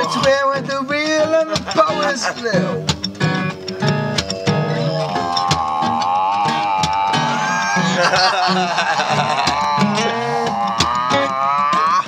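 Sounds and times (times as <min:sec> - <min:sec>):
strummed acoustic guitars: 0:00.0 - 0:12.0
long held melody note: 0:03.0 - 0:05.5.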